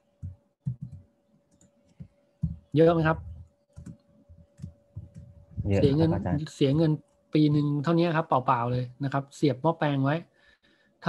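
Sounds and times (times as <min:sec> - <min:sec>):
computer keyboard keystrokes: 0:00.2 - 0:02.6, 0:03.7 - 0:05.3.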